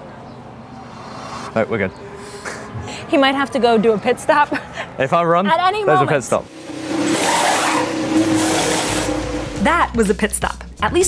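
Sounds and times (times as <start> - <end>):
race car engine running: 6.4 - 10.2
pneumatic wheel guns: 7.0 - 9.2.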